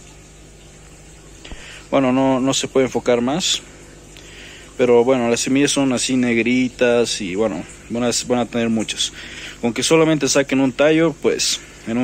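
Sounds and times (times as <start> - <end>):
faint hum: 0.0 - 12.0
man speaking: 4.8 - 12.0.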